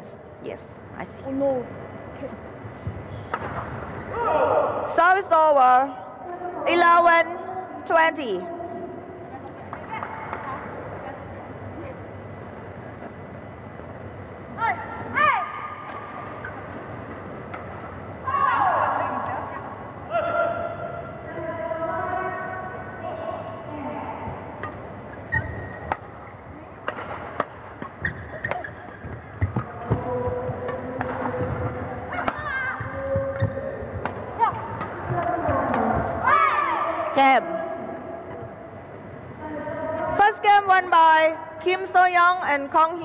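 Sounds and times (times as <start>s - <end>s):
voices: 0.0s - 43.0s
shoes squeaking on court floor: 25.1s - 26.4s, 27.4s - 31.8s
racket hitting shuttlecock: 25.4s - 26.1s, 26.8s - 30.0s.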